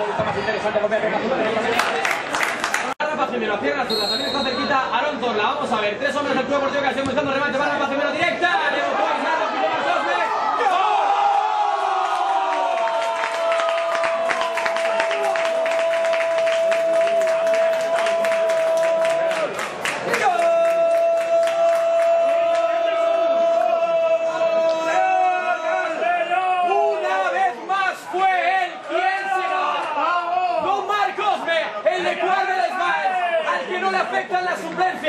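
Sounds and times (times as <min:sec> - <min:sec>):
spectators clapping and cheering: 0:01.7 - 0:03.0, 0:10.8 - 0:26.1.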